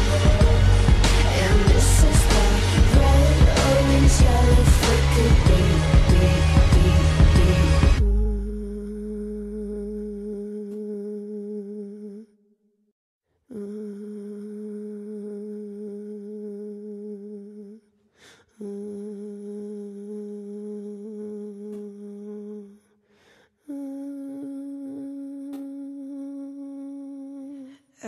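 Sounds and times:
person humming held notes: 23.7s - 27.7s.

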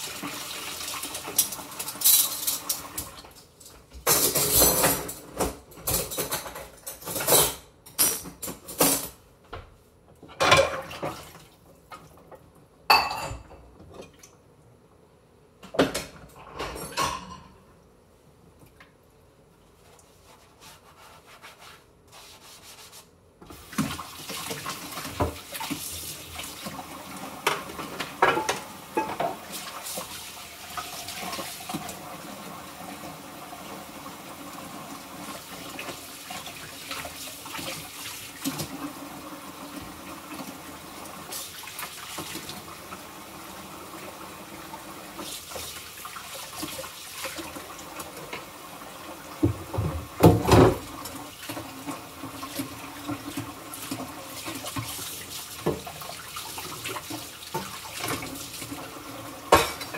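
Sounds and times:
water running into sink: 0.0s - 3.4s, 23.4s - 59.9s
dishes clinking: 4.0s - 9.2s, 10.3s - 11.0s, 12.9s - 14.2s, 15.8s - 17.7s, 27.4s - 29.4s, 59.5s - 59.9s.

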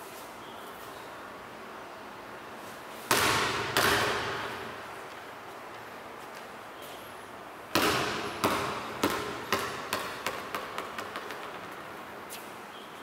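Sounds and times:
basketball bouncing on tiled floor: 3.1s - 4.5s, 7.7s - 11.8s.

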